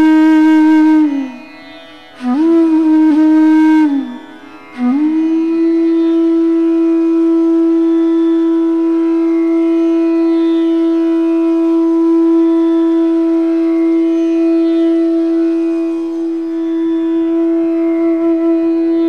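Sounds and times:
flute holding long note: 0:00.0 - 0:01.6, 0:02.2 - 0:19.0.

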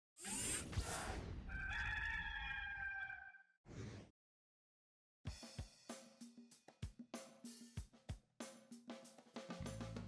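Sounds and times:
rooster crowing: 0:01.5 - 0:03.5.

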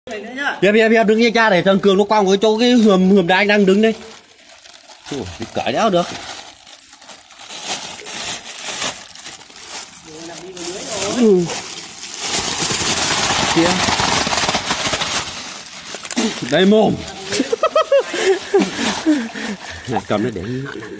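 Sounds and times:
plastic bag crinkling: 0:03.3 - 0:20.5.

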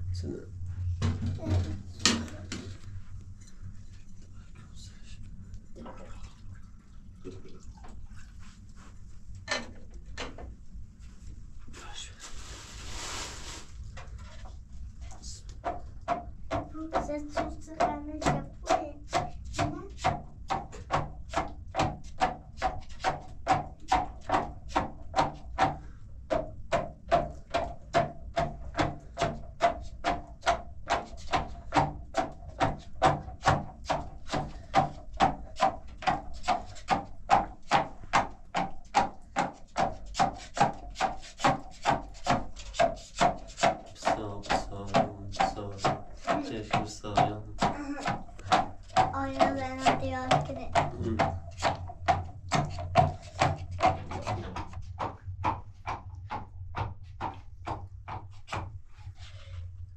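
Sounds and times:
stick knocking inside plastic bottle: 0:15.6 - 0:58.8.

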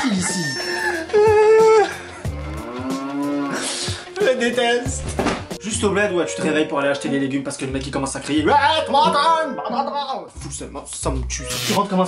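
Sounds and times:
cow mooing: 0:02.2 - 0:03.8.

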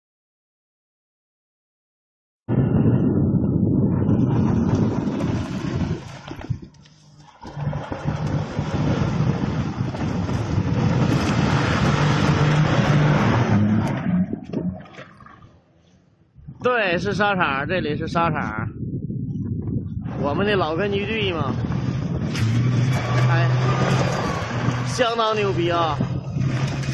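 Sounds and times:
car sliding on loose dirt: 0:03.9 - 0:15.3, 0:20.0 - 0:26.9
car engine revving hard: 0:07.4 - 0:14.3, 0:21.6 - 0:26.9.

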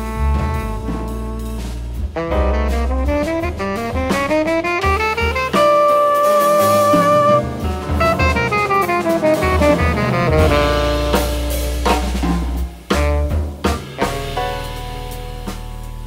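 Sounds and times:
synth bass: 0:00.0 - 0:05.2, 0:07.1 - 0:12.6
tenor saxophone: 0:00.0 - 0:11.9, 0:12.9 - 0:14.1
drum hits: 0:00.0 - 0:15.9
piano: 0:00.0 - 0:16.0.

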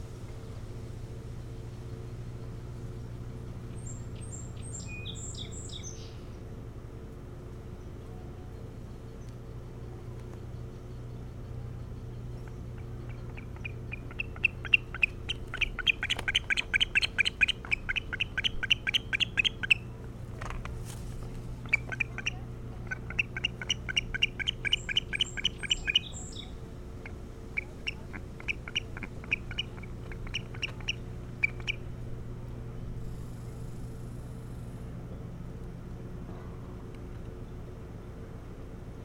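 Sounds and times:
osprey high chirps: 0:12.4 - 0:20.0, 0:21.6 - 0:31.8.

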